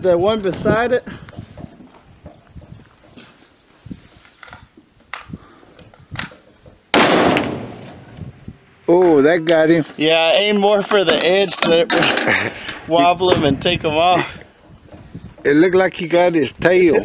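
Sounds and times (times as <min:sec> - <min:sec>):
rifle shot: 0:06.9 - 0:08.1.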